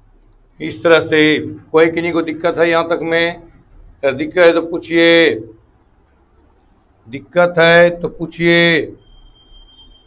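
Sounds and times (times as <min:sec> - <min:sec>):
man's voice holding a word: 0:00.6 - 0:05.6, 0:07.1 - 0:09.0.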